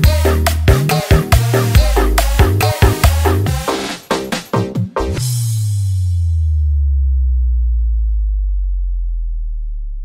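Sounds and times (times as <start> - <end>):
deep sub-bass tone sliding down: 5.3 - 10.0.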